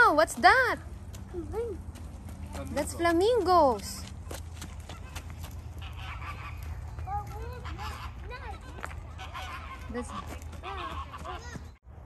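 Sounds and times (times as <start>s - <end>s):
flamingos honking: 4.9s - 11.8s.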